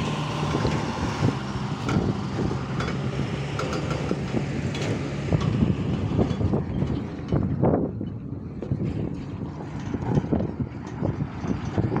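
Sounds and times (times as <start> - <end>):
diesel engines rumbling: 0.0 - 12.0
wind buffeting microphone: 0.0 - 12.0.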